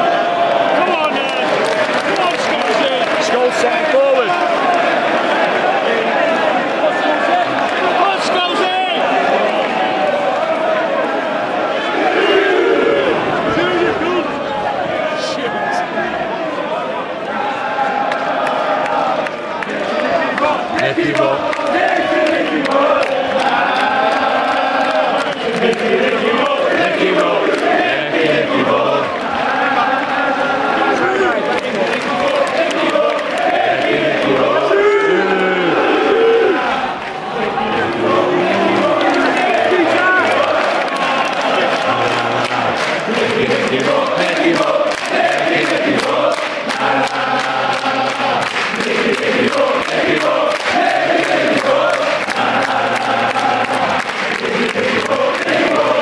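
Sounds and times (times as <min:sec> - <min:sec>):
crowd hand-clapping: 0:00.0 - 0:56.0
football crowd chanting: 0:00.0 - 0:56.0.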